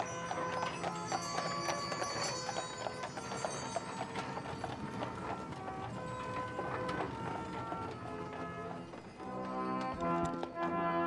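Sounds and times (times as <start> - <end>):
horse hooves on pavement: 0.0 - 11.0.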